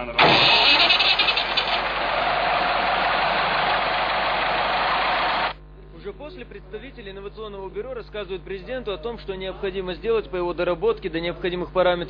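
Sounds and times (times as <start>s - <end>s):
engine starting and running: 0.0s - 5.6s.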